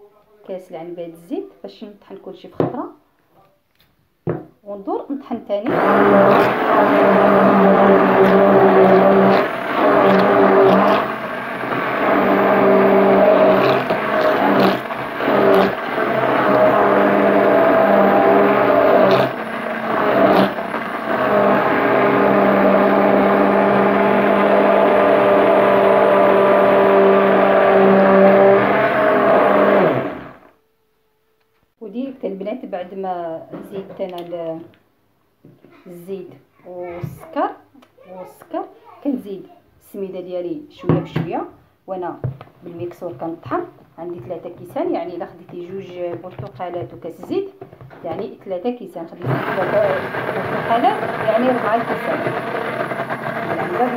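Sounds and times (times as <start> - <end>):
stick blender motor hum: 5.7 - 30.6, 49.2 - 53.9.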